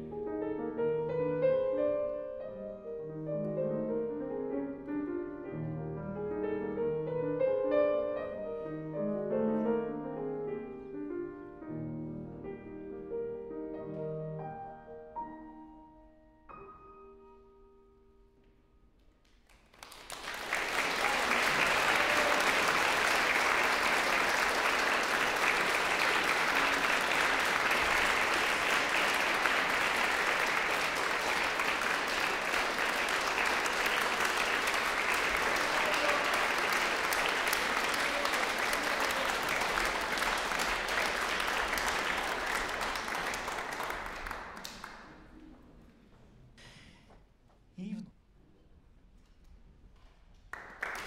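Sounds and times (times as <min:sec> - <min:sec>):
audience applauding: 0:19.2 - 0:45.3, 0:50.5 - 0:51.0.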